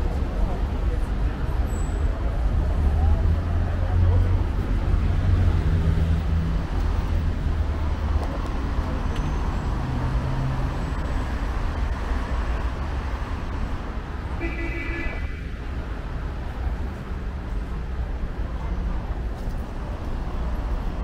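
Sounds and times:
road noise: 0:00.0 - 0:21.0.

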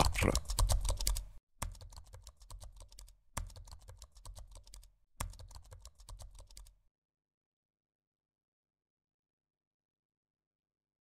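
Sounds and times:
keyboard typing: 0:00.0 - 0:06.8.

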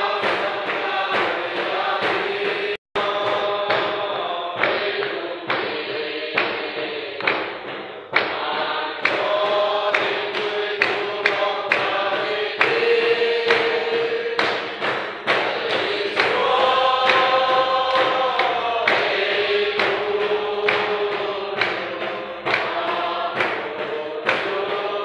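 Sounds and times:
congregation singing a hymn: 0:00.0 - 0:25.0
hand-clapping on a steady beat: 0:00.0 - 0:25.0.

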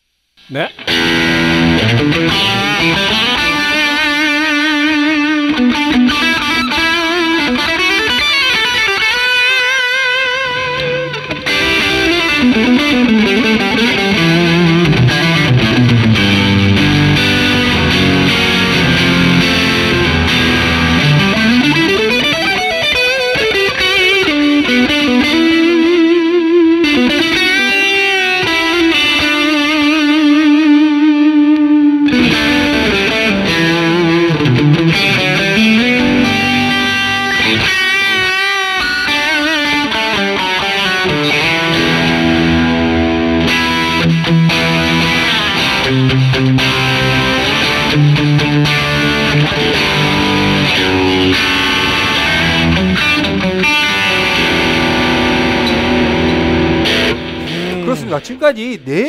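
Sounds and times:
distorted electric guitar: 0:00.0 - 0:59.0.

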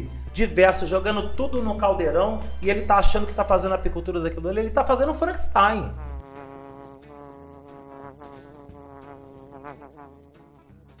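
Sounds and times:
bee buzzing: 0:05.3 - 0:11.0.

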